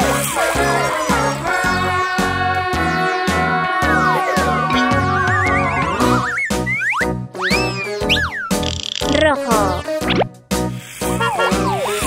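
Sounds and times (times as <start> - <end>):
upbeat children's music: 0.0 - 12.0
cartoon whistle-like glides: 3.9 - 9.1.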